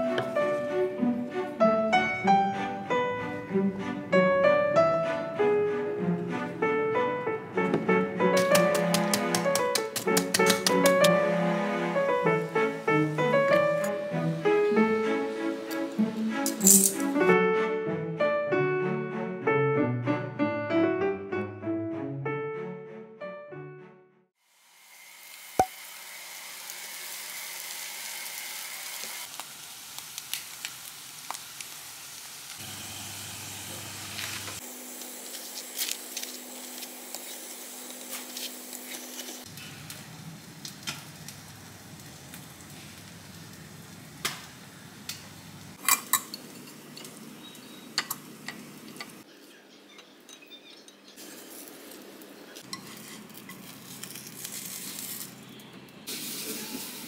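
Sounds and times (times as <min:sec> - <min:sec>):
utensils clinking on pan and plates: 0:16.5 - 0:17.2, 0:45.8 - 0:49.2, 0:52.6 - 0:55.3
food sizzling in frying pan: 0:24.4 - 0:49.2, 0:51.2 - 0:55.5, 0:56.1 - 0:57.0.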